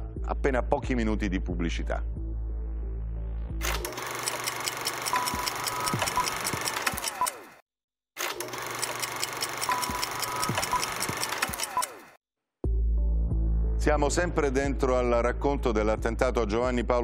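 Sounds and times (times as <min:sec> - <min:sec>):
studio background music: 0:00.0 - 0:06.8, 0:12.6 - 0:17.0.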